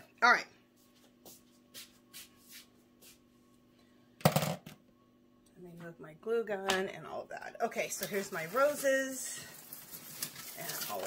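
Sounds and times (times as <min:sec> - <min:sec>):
craft supplies rustling and clattering: 0:07.8 - 0:11.0.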